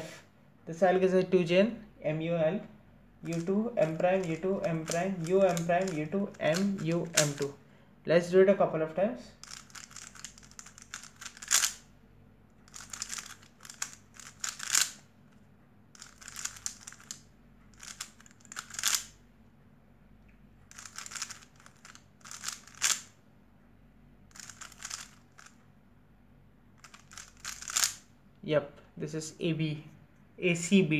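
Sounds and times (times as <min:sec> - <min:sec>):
puzzle cube clicking and scraping: 0:03.2 - 0:07.6, 0:09.4 - 0:11.8, 0:12.7 - 0:15.0, 0:16.0 - 0:19.1, 0:20.7 - 0:23.1, 0:24.3 - 0:25.6, 0:26.8 - 0:28.0.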